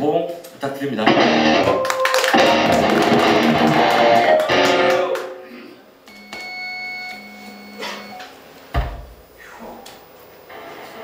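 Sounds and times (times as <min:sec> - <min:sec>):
electric guitar note: 0:01.1 - 0:05.8.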